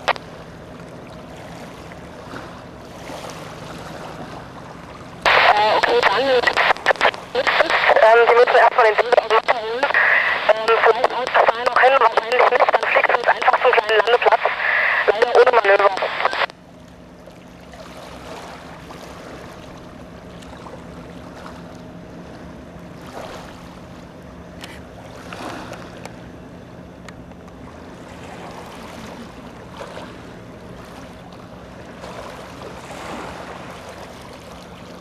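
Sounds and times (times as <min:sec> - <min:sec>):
distant motorboat hum: 0:00.0 - 0:35.0
man speaking over two-way radio: 0:05.3 - 0:16.5.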